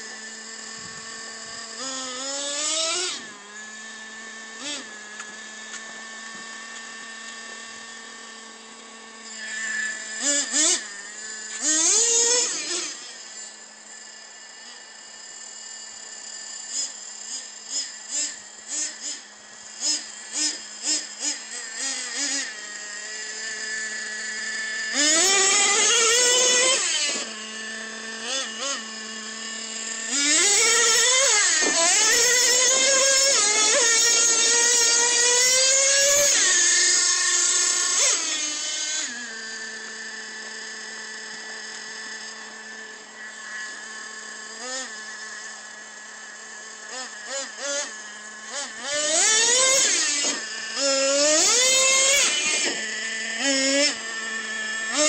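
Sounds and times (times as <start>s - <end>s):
toy truck motor revving: 0.0s - 55.0s.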